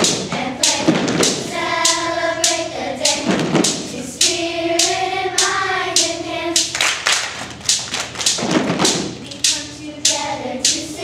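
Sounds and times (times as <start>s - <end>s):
children singing: 0.0s - 6.8s, 9.2s - 11.0s
hand drums beating: 0.0s - 11.0s
children clapping: 6.6s - 8.6s
deep drum thump: 8.3s - 9.2s.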